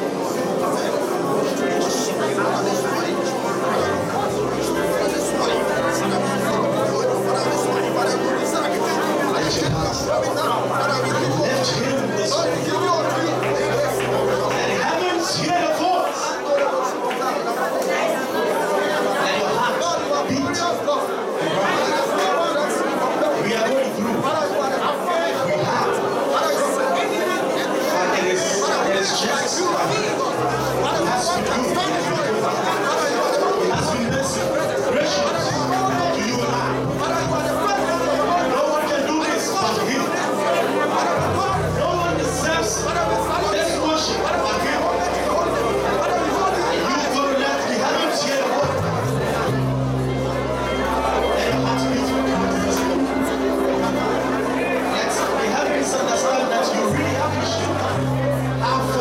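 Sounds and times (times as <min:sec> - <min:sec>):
sustained low music notes: 0:00.0 - 0:15.8, 0:33.8 - 0:47.8, 0:48.4 - 0:59.0
congregation praying aloud: 0:00.0 - 0:59.0.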